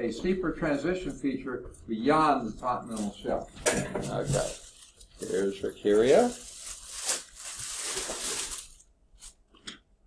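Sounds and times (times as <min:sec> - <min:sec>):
paper or wrapper rustling: 0:04.0 - 0:09.4.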